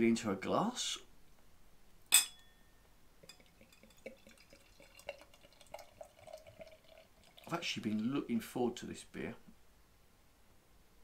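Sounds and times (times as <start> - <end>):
glass clink: 2.1 - 6.5
beer pouring into glass: 3.2 - 8.4.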